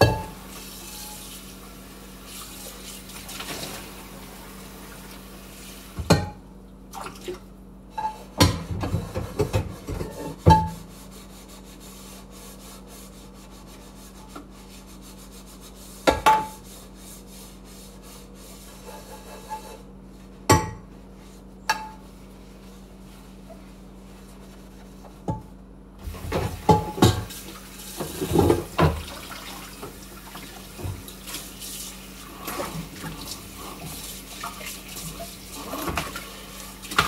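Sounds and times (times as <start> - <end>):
tap water running: 0.0 - 6.2, 26.0 - 37.0
saucepan and dishes clanking: 7.9 - 10.8.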